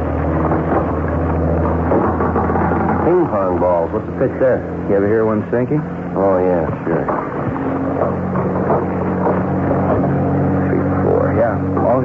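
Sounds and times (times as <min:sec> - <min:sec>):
motorboat engine drone: 0:00.0 - 0:12.0.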